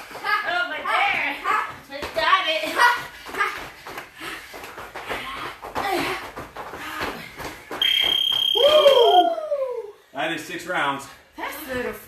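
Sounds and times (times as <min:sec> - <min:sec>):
long high timer beep: 0:07.8 - 0:09.2.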